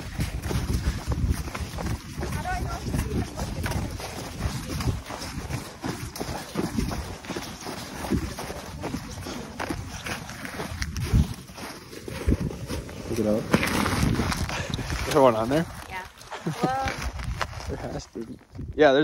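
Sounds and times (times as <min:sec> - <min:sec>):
footsteps crunching in snow: 0:00.0 - 0:18.7
wind rumbling on microphone: 0:00.0 - 0:19.0.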